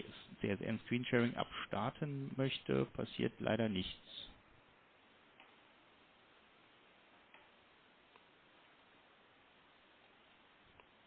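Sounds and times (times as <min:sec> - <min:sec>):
faint room hiss: 0:00.0 - 0:11.0.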